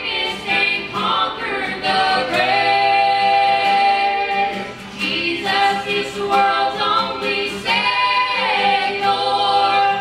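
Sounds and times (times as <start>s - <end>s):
gospel trio singing in harmony: 0.0s - 10.0s.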